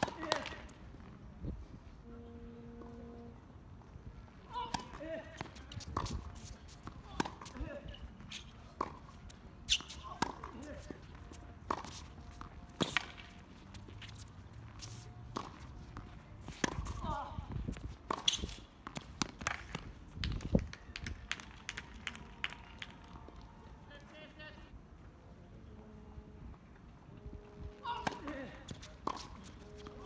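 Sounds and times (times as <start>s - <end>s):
tennis balls struck by rackets: 0.0s - 0.8s, 4.5s - 14.2s, 14.8s - 23.0s, 27.8s - 30.0s.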